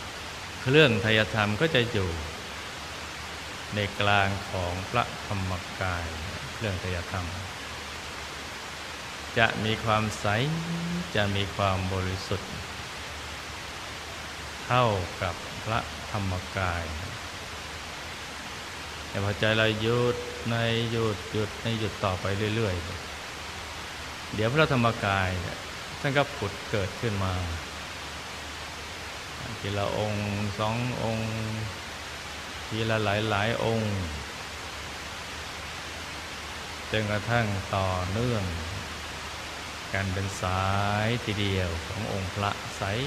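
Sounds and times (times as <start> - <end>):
background hiss: 0.0 - 43.0
man speaking slowly: 0.6 - 2.5, 3.7 - 7.6, 9.3 - 12.8, 14.6 - 17.3, 19.1 - 23.1, 24.3 - 27.7, 29.4 - 31.8, 32.6 - 34.4, 36.9 - 39.0, 39.9 - 43.0
low hum: 9.3 - 13.3.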